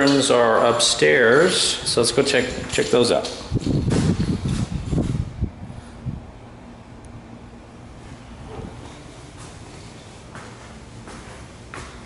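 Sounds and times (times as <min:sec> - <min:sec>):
walking thumps: 0:00.0 - 0:05.3, 0:08.0 - 0:12.0.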